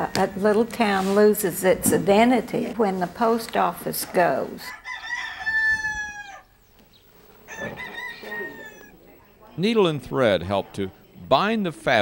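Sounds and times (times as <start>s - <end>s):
rooster crowing: 4.7s - 6.6s, 7.4s - 9.0s.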